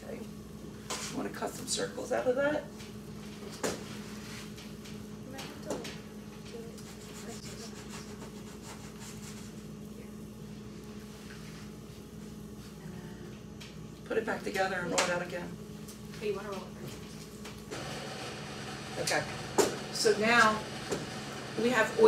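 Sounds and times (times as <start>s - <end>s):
steady low hum: 0.0s - 22.0s
dough rubbing and handling: 6.8s - 12.8s.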